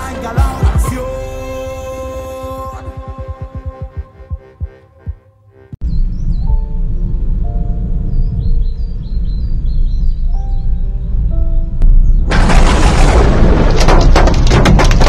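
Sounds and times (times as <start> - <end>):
music track: 0.0 - 9.0
deep steady rumble: 1.7 - 15.0
birds chirping: 3.2 - 12.3.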